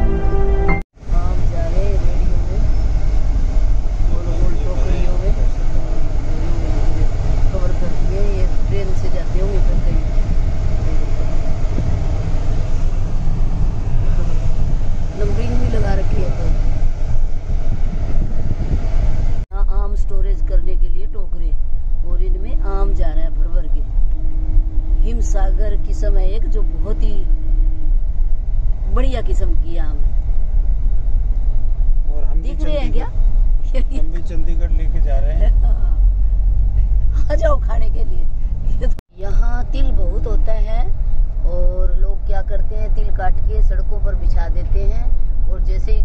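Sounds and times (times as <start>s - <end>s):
vehicle engine and road rumble: 0.0s - 46.0s
people talking: 1.1s - 2.9s, 4.1s - 10.1s, 15.2s - 16.6s, 19.5s - 23.8s, 25.0s - 27.3s, 28.9s - 30.0s, 32.1s - 36.0s, 37.2s - 46.0s
person speaking: 32.1s - 36.0s.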